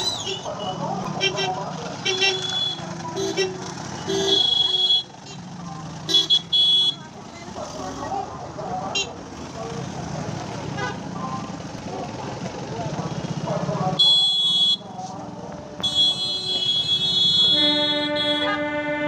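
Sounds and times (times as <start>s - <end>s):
vehicle horns honking: 0.0s - 7.2s, 8.9s - 9.2s, 10.7s - 11.2s, 13.9s - 15.0s, 15.8s - 19.0s
engines idling and passing: 0.0s - 19.0s.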